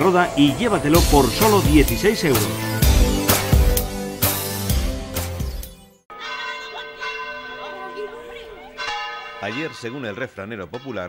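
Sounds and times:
church bells ringing: 0:00.0 - 0:02.6, 0:06.1 - 0:11.0.

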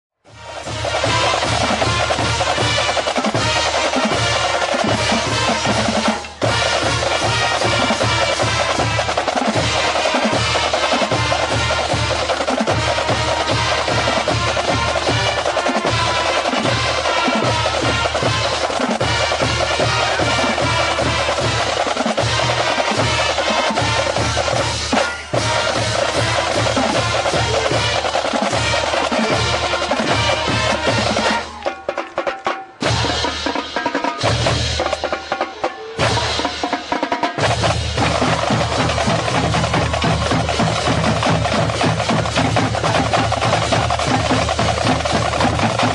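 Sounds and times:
marching band playing: 0:00.2 - 0:45.9
snare drum rolls: 0:00.3 - 0:45.9.

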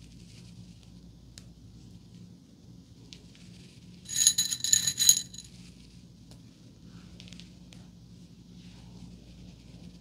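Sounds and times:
metal bobby pins jingling: 0:04.1 - 0:05.5.

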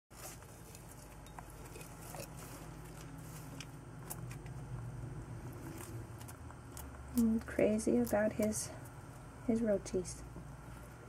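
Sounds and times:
lizard moving over soil: 0:00.1 - 0:04.6
low steady hum: 0:00.1 - 0:11.0.

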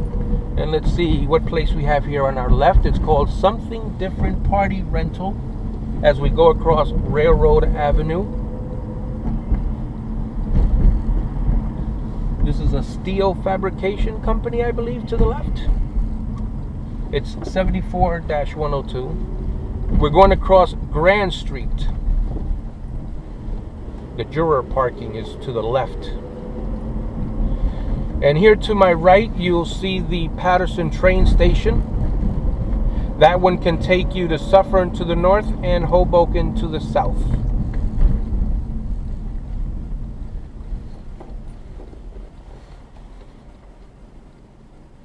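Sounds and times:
car driving rumble from inside: 0:00.0 - 0:45.0
tyres on road: 0:00.0 - 0:45.0.

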